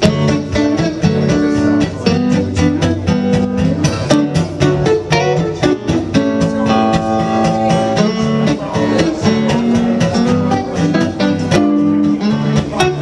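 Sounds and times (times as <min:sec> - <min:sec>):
electric and acoustic guitars: 0:00.0 - 0:13.0.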